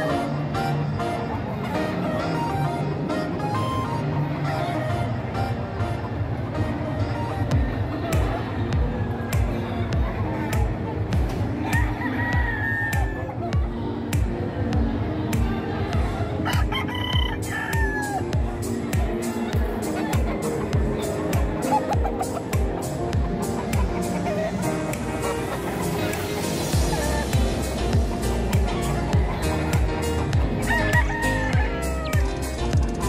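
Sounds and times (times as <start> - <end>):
background music with beat: 6.7 - 33.0
rooster crowing: 11.7 - 13.1, 16.5 - 18.2, 30.6 - 32.2
music with drum beat: 26.1 - 33.0.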